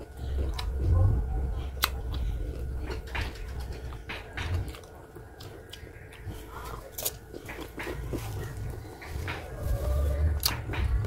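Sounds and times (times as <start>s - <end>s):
crunchy bite of fruit: 0.0s - 3.1s, 4.5s - 11.0s
crunchy chewing: 0.0s - 11.0s.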